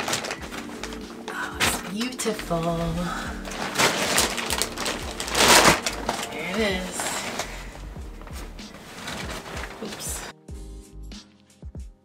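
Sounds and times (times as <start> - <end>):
fabric rustling and swishing: 0.0 - 10.3.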